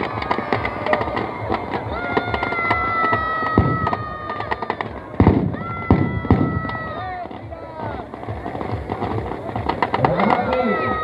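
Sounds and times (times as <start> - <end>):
firecrackers crackling and popping: 0.0 - 11.0
large crowd noise: 0.0 - 11.0.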